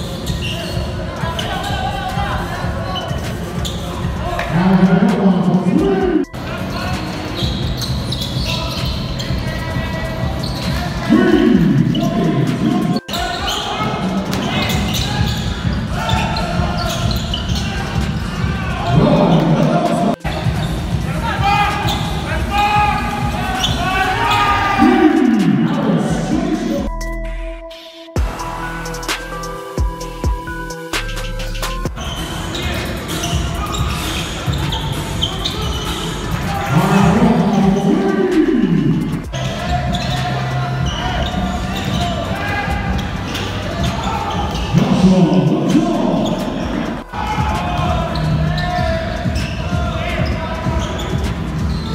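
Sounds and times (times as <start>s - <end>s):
sneaker squeaks: 0.0s - 26.9s, 30.9s - 51.9s
background music with held tones: 0.0s - 51.9s.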